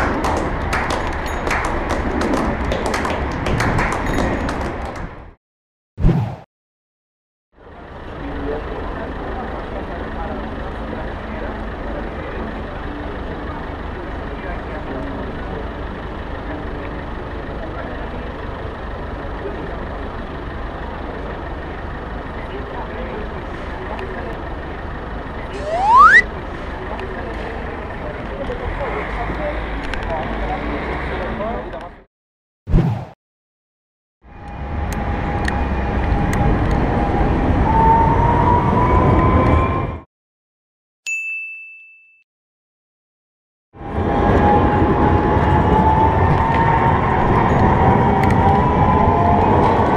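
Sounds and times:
low traffic rumble: 0.0 - 5.3, 7.6 - 25.6
electric tram passing: 34.3 - 40.0, 43.8 - 49.9.

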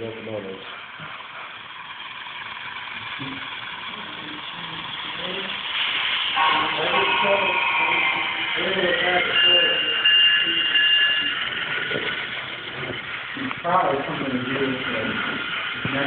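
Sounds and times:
voices talking: 3.2 - 16.0
model locomotive air horn: 5.0 - 11.8.

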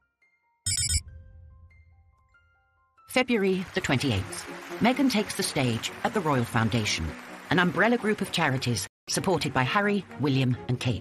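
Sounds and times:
electronic ringing trill: 0.7 - 1.1.

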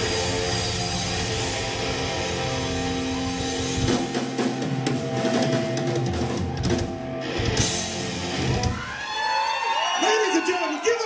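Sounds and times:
rock band playing: 0.0 - 10.9
audience cheering and whooping: 1.6 - 11.0.

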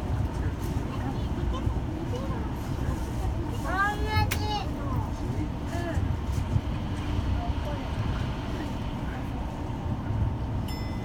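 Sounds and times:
monorail car rumbling: 0.0 - 11.0.

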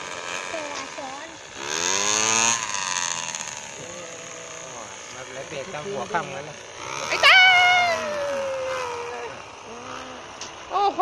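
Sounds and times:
small engine revving: 0.0 - 11.0.

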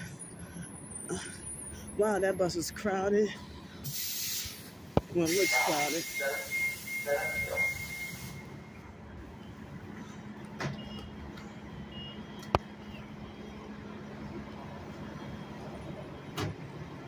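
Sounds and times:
bus engine idling: 0.0 - 17.0
faint short beeps: 5.3 - 8.7.

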